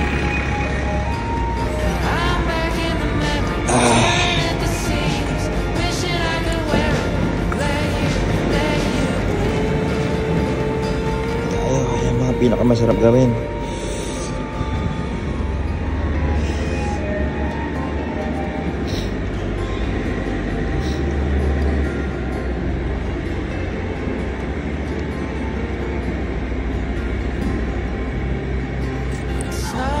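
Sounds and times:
background music with deep bass: 0.0 - 30.0.

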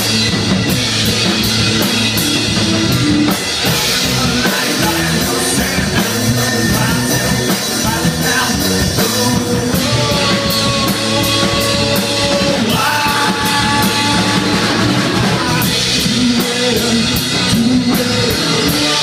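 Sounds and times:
live rock band playing: 0.0 - 19.0
man singing: 3.7 - 19.0.

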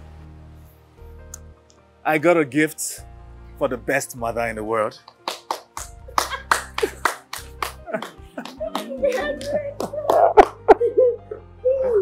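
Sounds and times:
background music: 0.0 - 12.0
hands clapping: 4.9 - 10.8.

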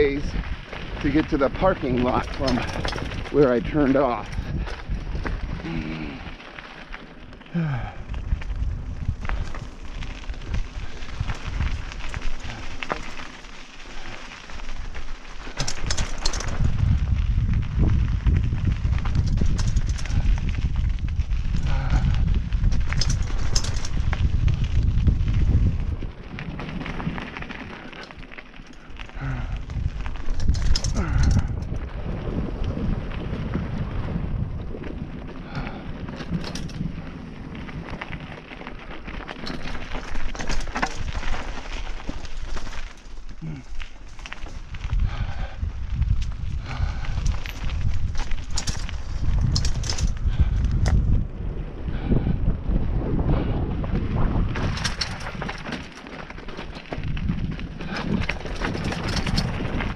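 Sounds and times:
bike clicks and rattles: 0.0 - 59.9
tyres on dirt trail: 0.0 - 59.9
wind buffeting microphone: 0.0 - 59.9.

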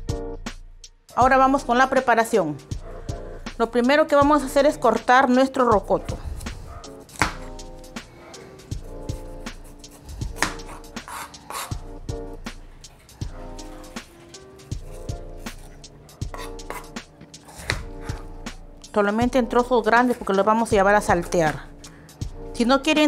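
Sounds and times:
background music: 0.0 - 23.0
knife tapping on cutting board: 7.2 - 7.5, 10.4 - 11.7.

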